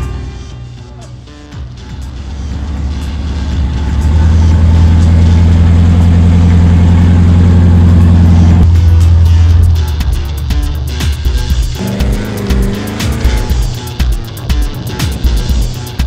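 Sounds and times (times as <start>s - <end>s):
truck engine revving: 0.0s - 16.0s.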